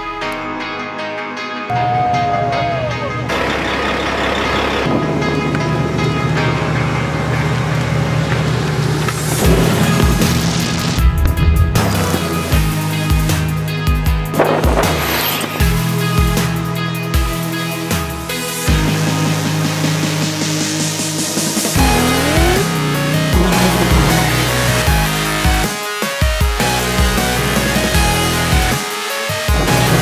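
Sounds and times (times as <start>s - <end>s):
sustained music tones: 1.7s - 17.0s, 21.2s - 30.0s
driving beat with bass drum: 9.4s - 30.0s.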